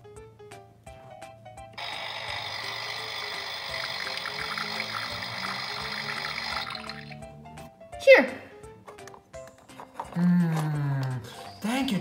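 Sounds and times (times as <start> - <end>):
light background music: 0.0 - 12.0
toy espresso machine hissing: 1.8 - 7.2.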